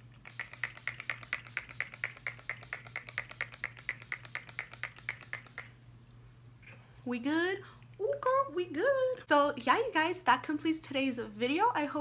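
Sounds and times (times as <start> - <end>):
spray bottle spritzing: 0.2 - 5.8.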